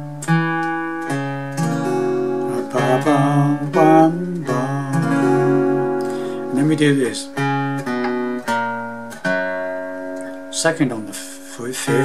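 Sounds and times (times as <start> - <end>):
fingerstyle acoustic guitar notes: 0.0 - 12.0.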